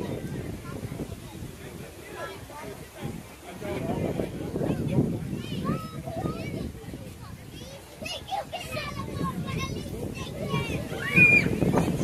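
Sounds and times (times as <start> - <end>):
children calling and chattering: 0.0 - 12.0.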